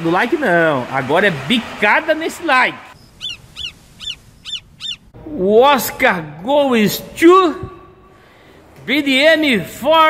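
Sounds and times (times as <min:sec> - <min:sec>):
eagle calling: 0:03.0 - 0:05.2.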